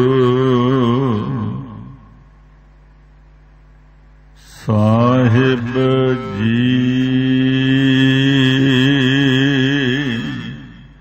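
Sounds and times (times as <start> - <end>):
man chanting: 0.0 - 2.2, 4.4 - 11.0.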